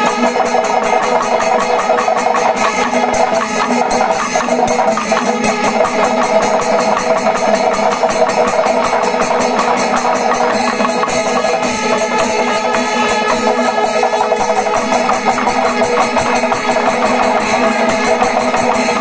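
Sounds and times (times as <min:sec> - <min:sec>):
fast dense drumming: 0:00.0 - 0:19.0.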